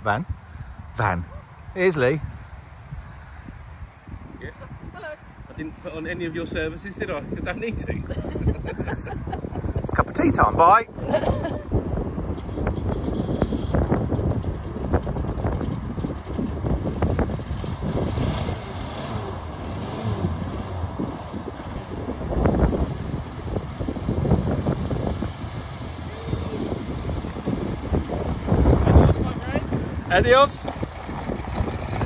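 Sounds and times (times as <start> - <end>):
wind buffeting microphone: 0.2 - 32.0
van engine running: 12.8 - 32.0.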